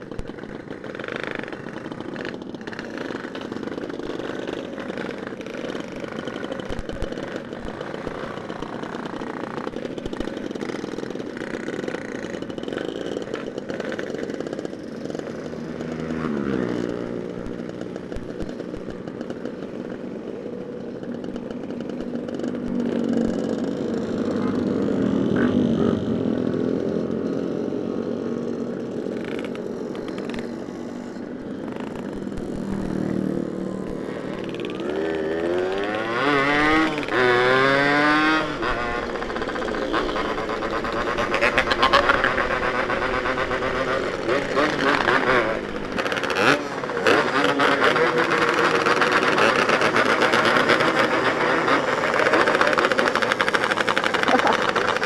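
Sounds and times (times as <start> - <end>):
motorcycle engines idling and revving: 0.0 - 55.0.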